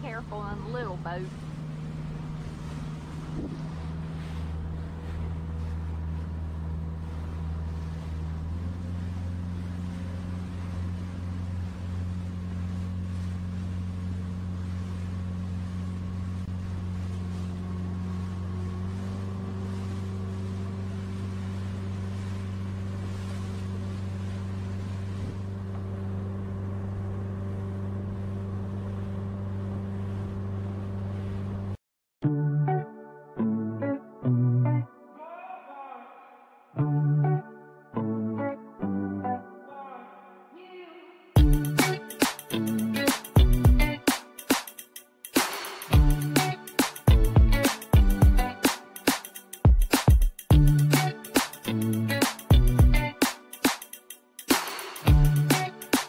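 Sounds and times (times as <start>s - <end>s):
outboard motor running: 0.0s - 31.8s, 41.4s - 44.7s, 45.3s - 48.7s, 49.7s - 53.8s, 54.5s - 56.0s
water noise: 0.0s - 31.8s, 41.4s - 56.0s
wind noise: 3.3s - 4.0s.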